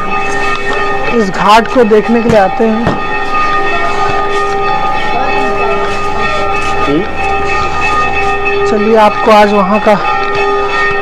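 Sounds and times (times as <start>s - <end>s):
steady droning tone: 0.0s - 11.0s.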